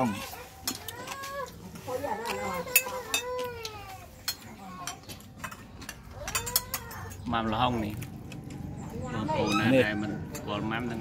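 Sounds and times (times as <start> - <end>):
spoons clinking on dishes: 2.7 - 7.2.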